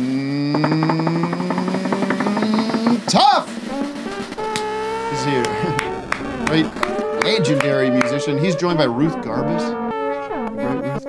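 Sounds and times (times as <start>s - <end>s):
man holding a long sung note: 0.0s - 9.6s
drum roll: 0.5s - 8.8s.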